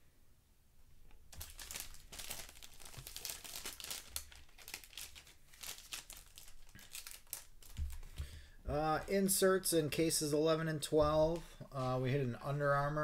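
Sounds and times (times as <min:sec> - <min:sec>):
plastic bag crinkling: 0:01.3 - 0:08.3.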